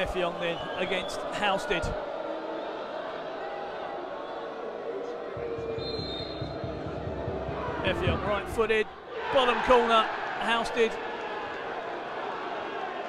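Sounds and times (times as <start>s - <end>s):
stadium crowd murmuring and calling: 0.0s - 13.0s
referee whistle: 5.8s - 6.6s.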